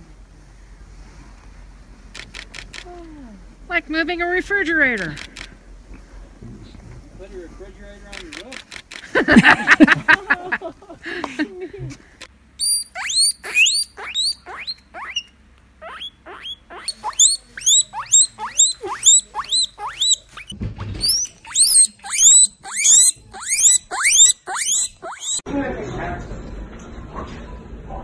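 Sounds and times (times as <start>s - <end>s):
guinea pig wheeking: 12.6s - 25.4s.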